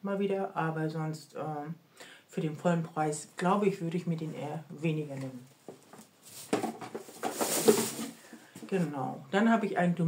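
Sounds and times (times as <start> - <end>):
rustling of packaging and bottles: 5.5 - 8.9.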